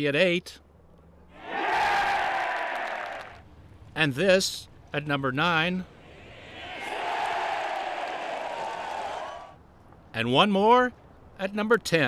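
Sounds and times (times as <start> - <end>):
crowd cheering and applauding: 1.4 - 3.4, 6.5 - 9.6.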